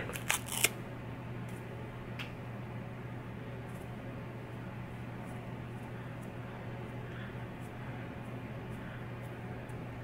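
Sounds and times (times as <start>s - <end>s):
steady low hum: 0.0s - 10.0s
bandage handling clicks and rustles: 0.1s - 0.7s.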